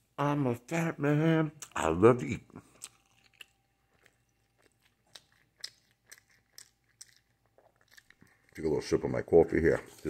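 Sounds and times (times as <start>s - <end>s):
chewing food: 2.5s - 10.0s.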